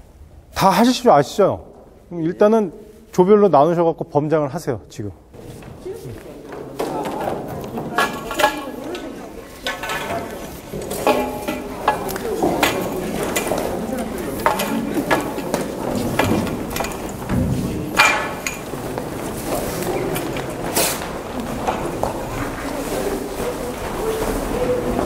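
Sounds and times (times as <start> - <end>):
people talking: 0.6 - 16.8, 19.4 - 25.0
metal fittings clinking: 8.0 - 17.3.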